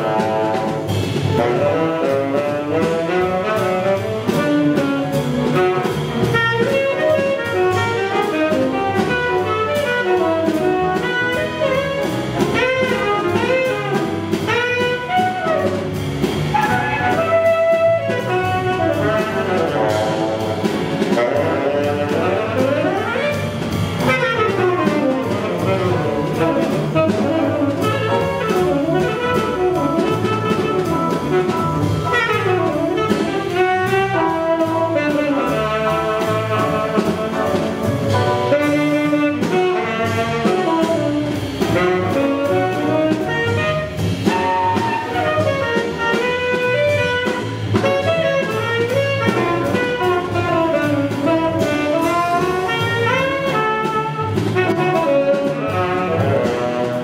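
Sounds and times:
drums: 0.0 - 57.0
tenor saxophone solo: 0.0 - 57.0
walking upright bass: 0.0 - 57.0.

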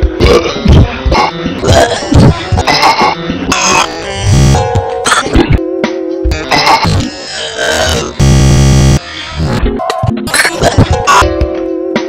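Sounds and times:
music playing: 0.0 - 12.0
man making belch-like mouth noises: 0.2 - 5.6, 6.3 - 8.2.

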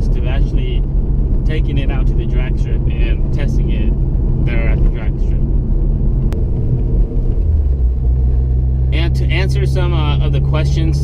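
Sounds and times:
car engine droning at cruise: 0.0 - 11.0.

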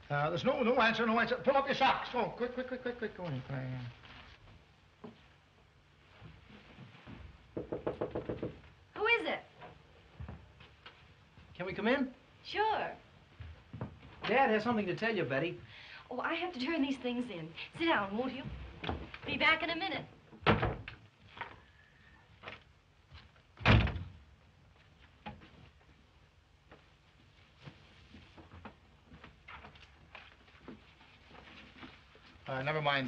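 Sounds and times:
rapid knocking on wooden door: 7.5 - 8.6
wooden door slamming: 20.4 - 20.9, 23.6 - 24.2.

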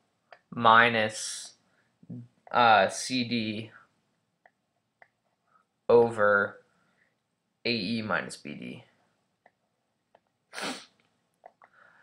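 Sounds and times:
person sniffing: 10.5 - 11.0.

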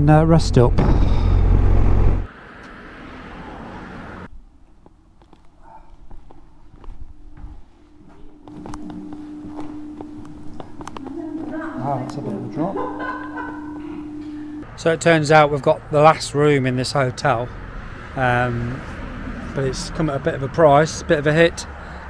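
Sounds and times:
light footsteps: 4.6 - 13.0
steady low hum: 6.6 - 14.6
motorcycle engine riding: 6.8 - 14.6
clicks: 8.4 - 14.6.

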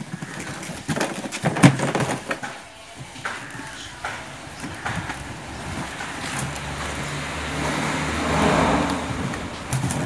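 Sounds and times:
vehicle passing: 3.4 - 10.0.

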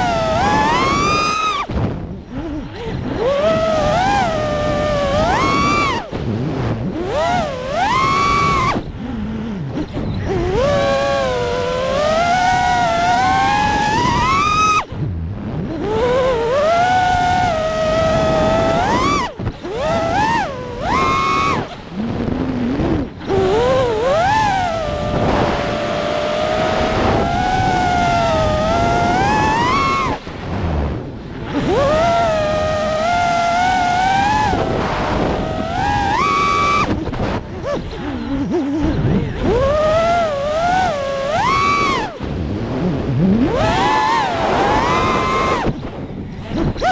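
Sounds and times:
drone motors whining: 0.0 - 46.9
rush of air noise: 0.0 - 46.9.

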